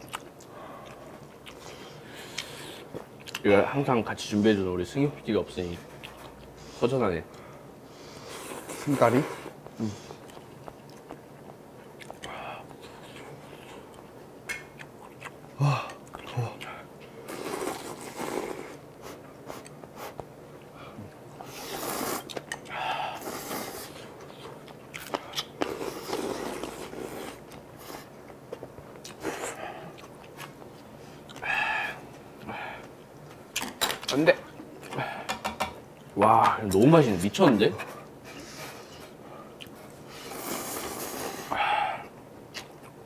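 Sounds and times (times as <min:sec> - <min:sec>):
chewing: 0:00.0 - 0:03.4, 0:10.2 - 0:16.7, 0:24.0 - 0:31.5, 0:42.5 - 0:43.0
noodles slurping: 0:17.3 - 0:18.8.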